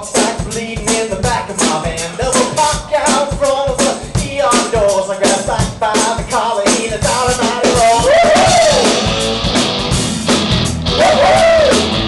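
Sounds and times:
rock band playing: 0.0s - 12.0s
lead guitar line: 8.0s - 12.0s.

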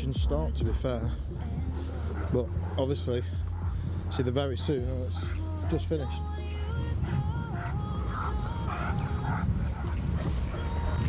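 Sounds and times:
background music: 0.0s - 11.0s
low rumble: 0.0s - 11.0s
dog yipping: 7.1s - 11.0s.

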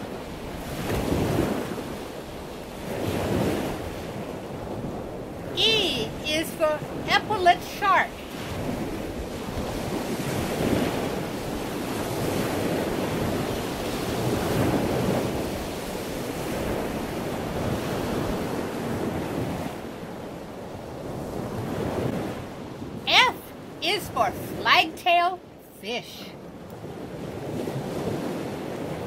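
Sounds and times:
rushing water: 21.2s - 26.4s.

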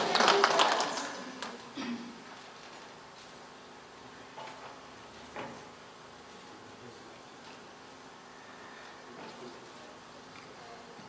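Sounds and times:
faint room hiss and hum: 0.0s - 11.0s.

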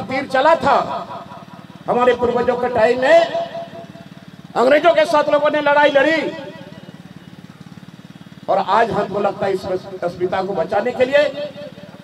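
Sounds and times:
man's amplified voice: 0.0s - 6.9s, 8.4s - 12.0s
small engine humming: 0.0s - 12.0s.

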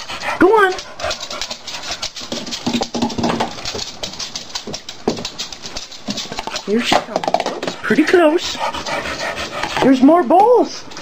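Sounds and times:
dog breathing: 0.0s - 2.7s, 7.7s - 11.0s
dog claws clicking on floor: 0.0s - 11.0s.

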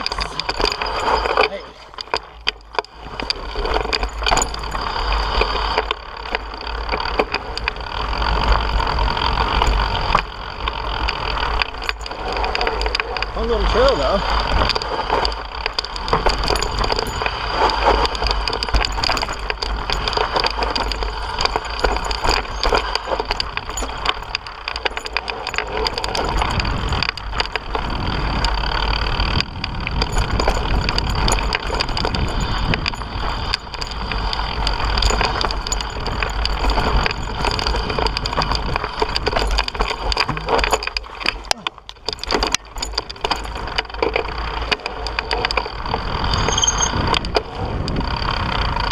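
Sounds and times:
bike rattling over stones: 0.0s - 48.9s
wind buffeting microphone: 7.5s - 41.2s, 41.8s - 48.9s.

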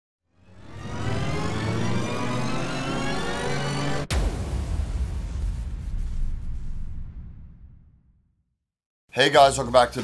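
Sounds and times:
noisy riser with rising tones: 0.3s - 8.0s.

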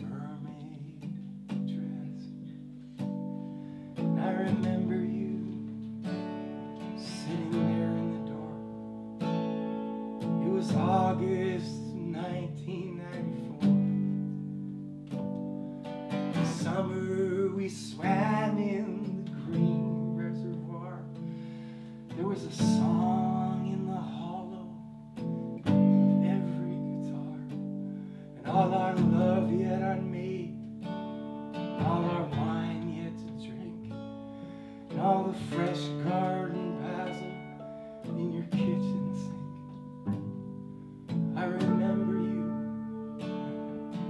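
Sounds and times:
man singing: 0.0s - 2.6s, 4.0s - 8.9s, 10.2s - 14.4s, 16.3s - 21.4s, 22.0s - 25.0s, 25.6s - 27.7s, 28.3s - 30.9s, 31.6s - 39.8s, 41.2s - 44.0s
acoustic guitar chords: 0.0s - 44.0s
piano: 0.0s - 44.0s.

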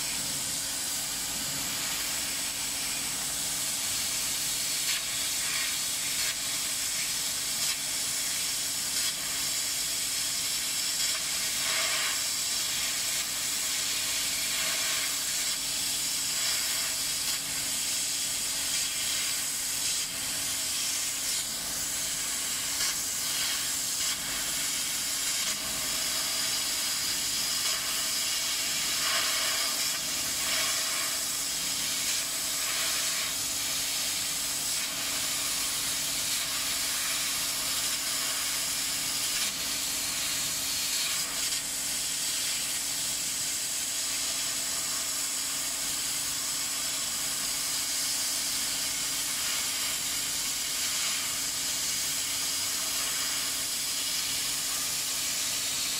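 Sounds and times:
laser cutter air hiss: 0.0s - 55.9s.

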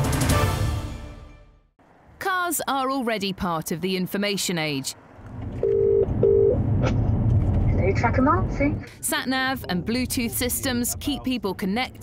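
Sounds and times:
car road rumble: 4.6s - 12.0s.

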